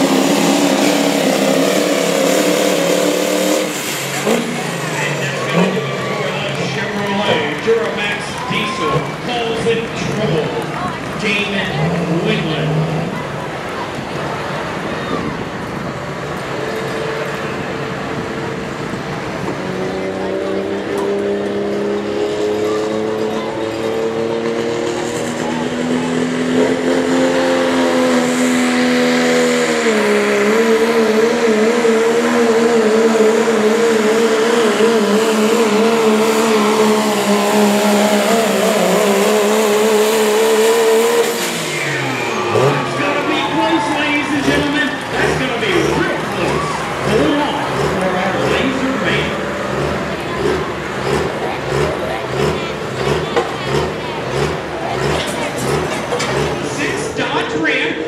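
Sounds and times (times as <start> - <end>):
diesel truck engine under load: 0.0 - 58.0.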